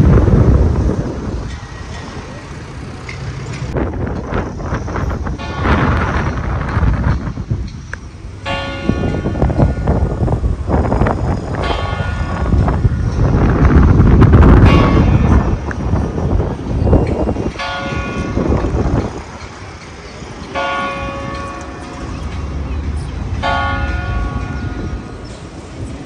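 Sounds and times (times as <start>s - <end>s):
loud low rumble: 0.0s - 19.3s
church bell tolling: 5.4s - 6.9s, 8.4s - 10.0s, 11.5s - 13.4s, 14.5s - 15.6s, 17.0s - 25.1s.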